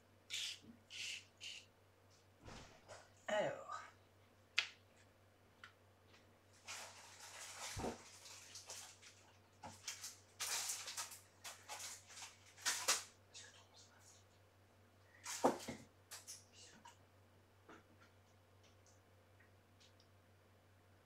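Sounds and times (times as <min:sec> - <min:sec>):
paper and card rustling: 0:06.6 - 0:13.1.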